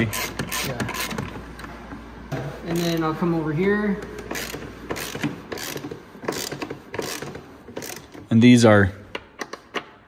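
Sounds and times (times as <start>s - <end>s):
socket ratchet clicking: 4.2s - 8.2s.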